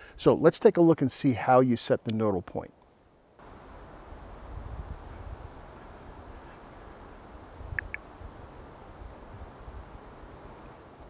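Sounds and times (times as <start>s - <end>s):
wind rumble on microphone: 4.0s - 11.0s.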